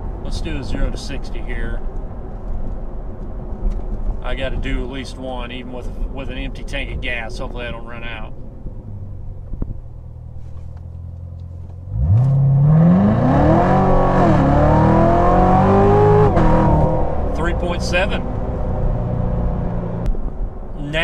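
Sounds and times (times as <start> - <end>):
car engine revving: 8.8 - 20.1.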